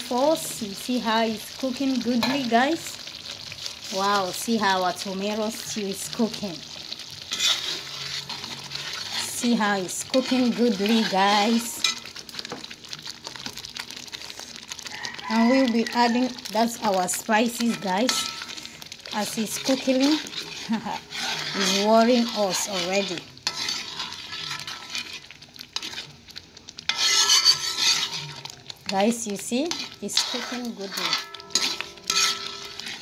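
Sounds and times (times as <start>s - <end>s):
stew frying crackling and popping: 0.0s - 33.0s
spoon scraping sauce in metal pot: 7.2s - 12.5s, 17.7s - 26.2s, 26.8s - 33.0s.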